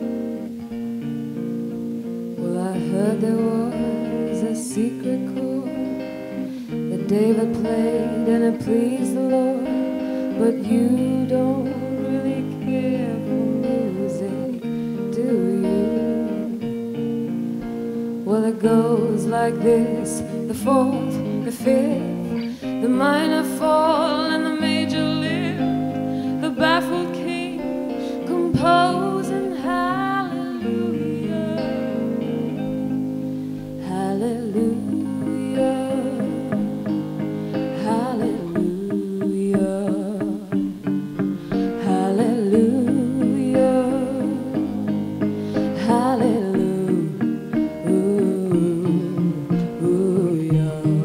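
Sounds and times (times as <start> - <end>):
electric guitar melody: 0.0 - 51.0
person singing: 2.3 - 51.0.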